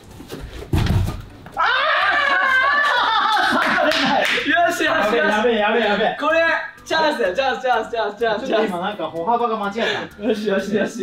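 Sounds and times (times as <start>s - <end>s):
heavy thump on floor: 0.6s - 1.3s.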